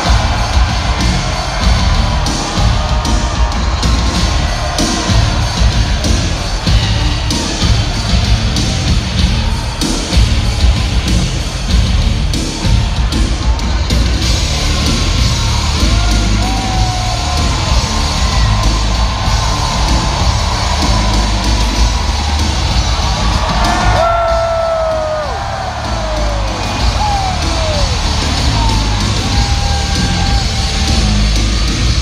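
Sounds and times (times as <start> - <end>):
crowd cheering and yelling: 0.0 - 32.0
fans yelling nearby: 0.0 - 32.0
heavy rock music over loudspeakers: 0.0 - 32.0.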